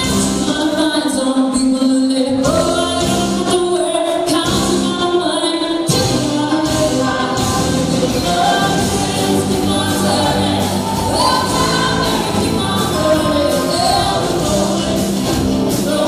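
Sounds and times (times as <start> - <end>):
live band playing: 0.0 - 16.0
person singing: 0.0 - 16.0
steady drum beat: 6.0 - 16.0.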